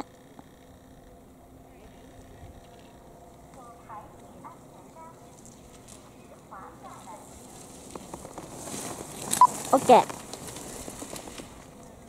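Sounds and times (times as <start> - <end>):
skis carving across snow: 7.5 - 11.7.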